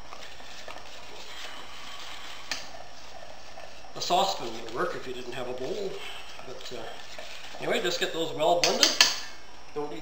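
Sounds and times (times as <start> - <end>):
wire whisk scraping metal bowl: 0.0 - 9.2.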